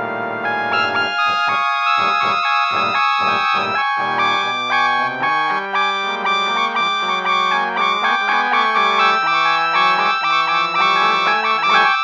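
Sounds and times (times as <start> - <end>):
piano: 0.0 - 12.0
trumpet playing held notes: 0.4 - 12.0.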